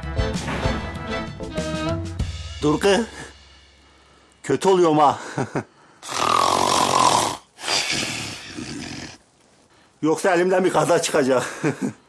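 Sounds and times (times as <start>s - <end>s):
man snoring: 6.0s - 9.2s.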